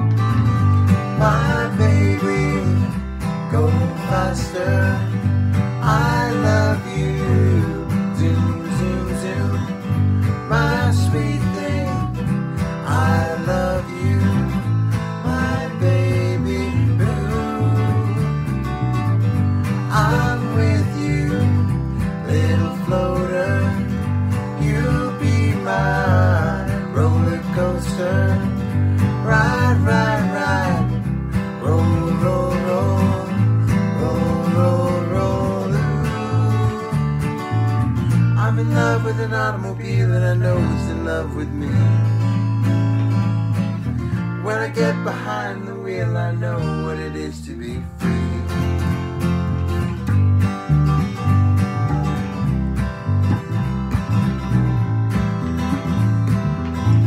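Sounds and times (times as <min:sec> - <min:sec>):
acoustic guitars strumming: 0:00.0 - 0:57.0
two voices singing: 0:00.8 - 0:18.7, 0:19.7 - 0:37.5, 0:38.1 - 0:42.4, 0:44.2 - 0:49.1.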